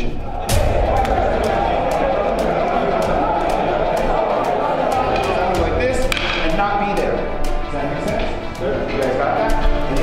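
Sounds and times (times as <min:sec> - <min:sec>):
indistinct voices: 0:00.0 - 0:10.0
music with steady beat: 0:00.2 - 0:10.0.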